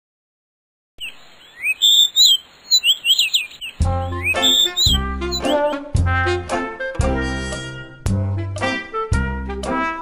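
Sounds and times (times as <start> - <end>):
birds chirping: 1.0 - 5.8
background music: 3.8 - 10.0.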